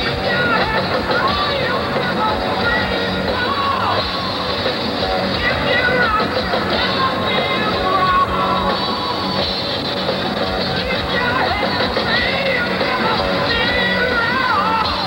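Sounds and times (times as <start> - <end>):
man singing: 0.0 - 9.6, 10.6 - 15.0
hard rock band playing live: 0.0 - 15.0.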